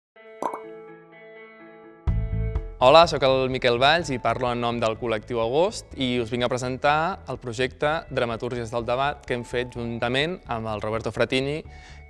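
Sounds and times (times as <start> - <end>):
pop sound effect: 0.4 - 0.8.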